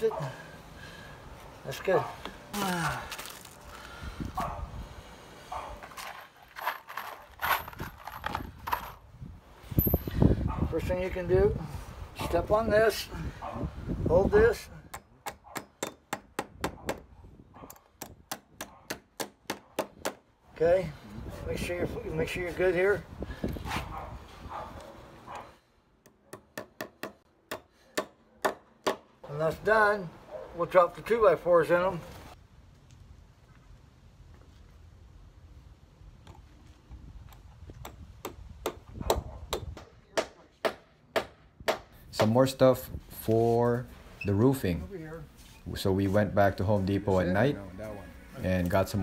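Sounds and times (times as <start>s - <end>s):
hammer striking nails: 14.9s - 17.1s, 17.7s - 20.2s, 26.0s - 29.1s, 37.8s - 42.3s
hammer striking nails into metal: 14.9s - 17.1s.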